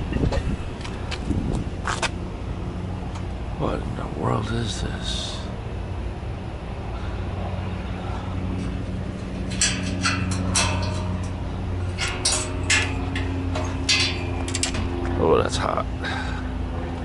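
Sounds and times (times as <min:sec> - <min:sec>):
diesel truck engine idling: 0:00.0 - 0:17.0.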